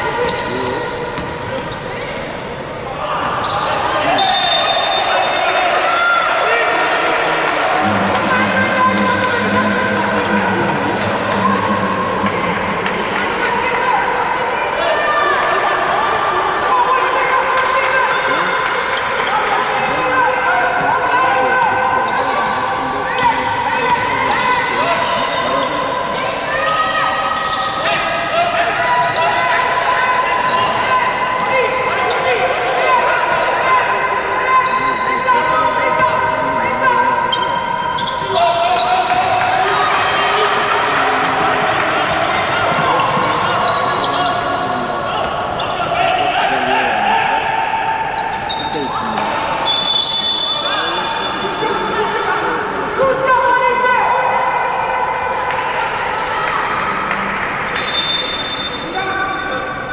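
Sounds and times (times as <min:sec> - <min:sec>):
shouts echoing in hall: 0:00.0 - 0:59.9.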